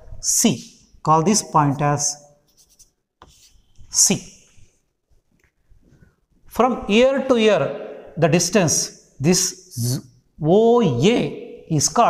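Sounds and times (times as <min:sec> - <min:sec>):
chalk scratching on blackboard: 0:02.4 - 0:04.0.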